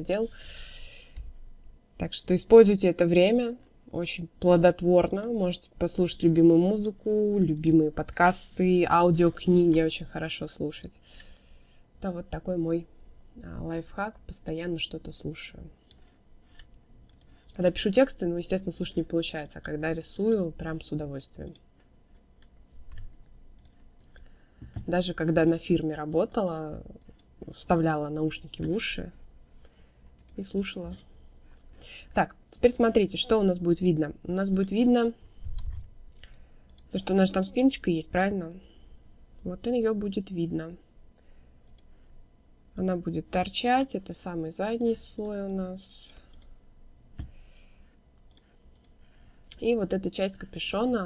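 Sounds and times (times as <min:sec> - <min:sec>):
woman speaking: 0:00.0 - 0:01.1, 0:02.0 - 0:11.0, 0:12.0 - 0:15.8, 0:17.6 - 0:21.6, 0:24.8 - 0:29.2, 0:30.4 - 0:31.0, 0:31.8 - 0:35.2, 0:36.9 - 0:38.7, 0:39.4 - 0:40.8, 0:42.8 - 0:46.3, 0:49.5 - 0:51.0
computer mouse clicking: 0:05.0 - 0:05.4, 0:15.8 - 0:20.5, 0:21.2 - 0:27.8, 0:30.1 - 0:30.7, 0:34.5 - 0:37.1, 0:41.6 - 0:41.9, 0:44.7 - 0:46.6, 0:48.2 - 0:49.6.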